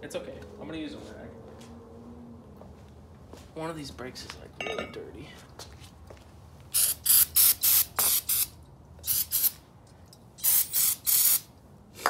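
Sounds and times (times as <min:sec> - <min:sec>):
aerosol spray hissing: 0:06.8 - 0:09.6, 0:10.4 - 0:11.4.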